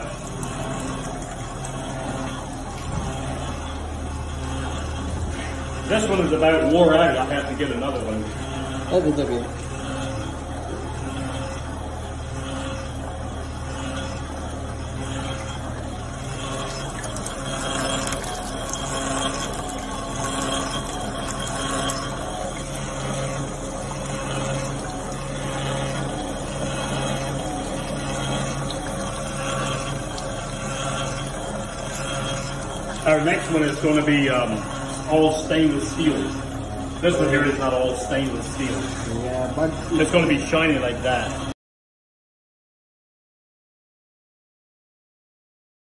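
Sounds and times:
hand-cranked separator humming: 0:00.0 - 0:41.6.

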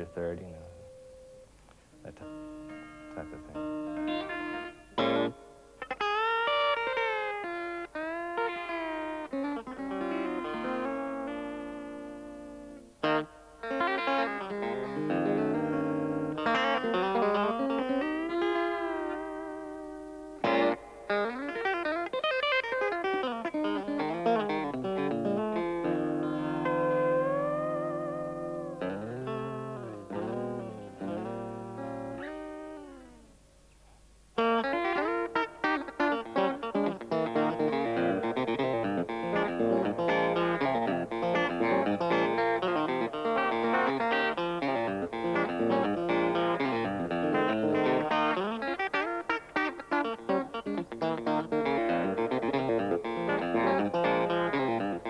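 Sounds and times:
electric guitar playing: 0:00.0 - 0:33.4, 0:34.4 - 0:55.0.

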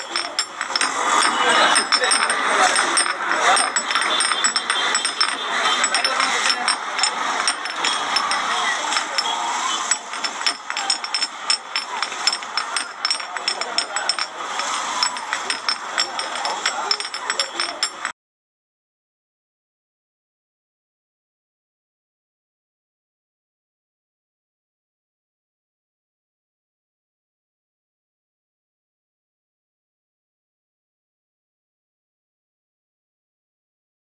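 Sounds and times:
crowd of voices chattering: 0:00.0 - 0:18.1
sharp clicks and clinks: 0:00.0 - 0:18.1.

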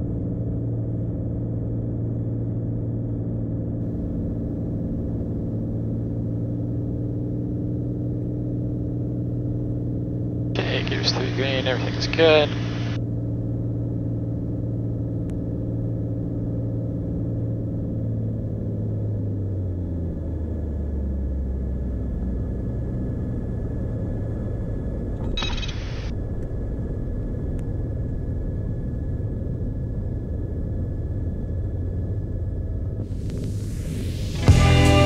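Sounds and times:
propeller plane engine rumble: 0:00.0 - 0:35.0.

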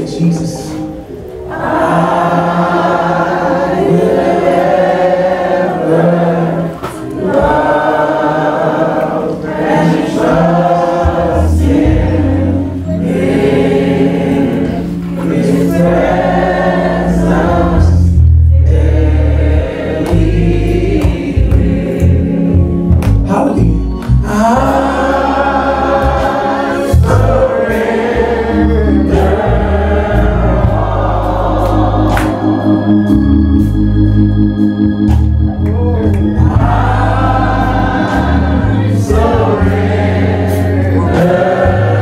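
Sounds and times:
congregation singing worship song: 0:00.0 - 0:42.0
low bass notes: 0:09.6 - 0:42.0.

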